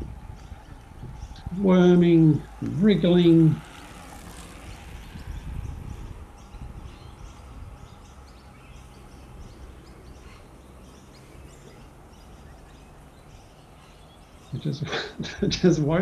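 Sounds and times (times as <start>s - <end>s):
distant bird chirps: 0.0s - 16.0s
steady low rumble: 0.0s - 16.0s.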